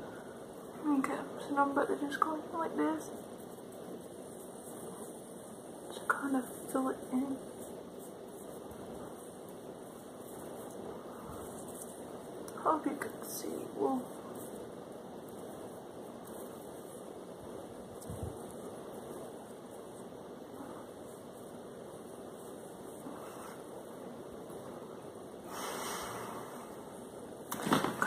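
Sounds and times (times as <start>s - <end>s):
steady background hiss: 0.0s - 28.0s.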